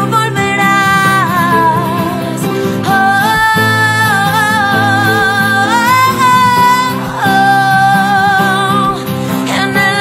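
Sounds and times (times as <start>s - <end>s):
acoustic guitar: 0.0s - 10.0s
piano: 0.0s - 10.0s
woman singing: 0.0s - 10.0s.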